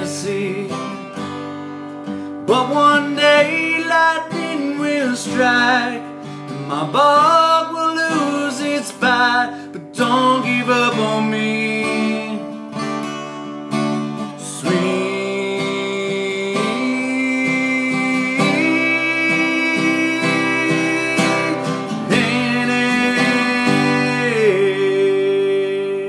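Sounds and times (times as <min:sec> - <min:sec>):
strummed acoustic guitar: 0:00.0 - 0:26.0
man singing long notes: 0:14.4 - 0:26.0.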